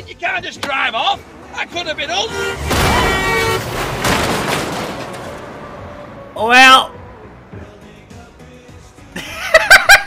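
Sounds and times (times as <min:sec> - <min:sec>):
vehicle horn: 0:02.1 - 0:04.0
van crashing into car door: 0:02.6 - 0:05.5
door crashing onto road: 0:02.6 - 0:05.8.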